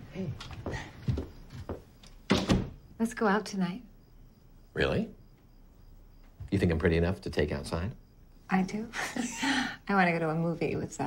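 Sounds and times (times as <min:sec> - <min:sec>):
wooden door knocking shut: 0:02.2 - 0:02.8.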